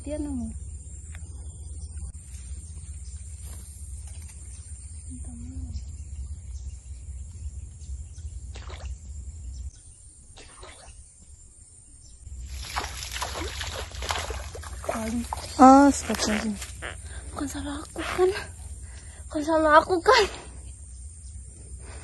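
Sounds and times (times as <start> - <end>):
steady low rumble: 0.0 - 10.2
water sloshing: 12.3 - 17.2
water splashing: 12.4 - 16.8.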